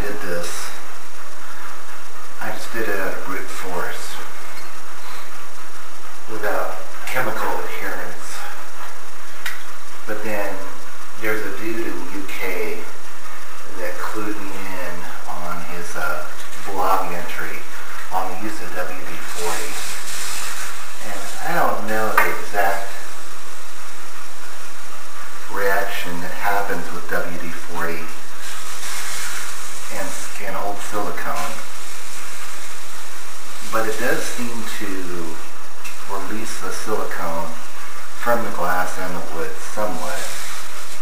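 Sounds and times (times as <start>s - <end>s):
man talking: 0.0s - 0.9s, 2.4s - 4.6s, 6.2s - 9.0s, 10.0s - 20.1s, 20.7s - 23.2s, 25.3s - 31.8s, 33.6s - 40.5s
brief hiss: 19.2s - 23.3s, 28.4s - 35.4s, 39.8s - 41.0s.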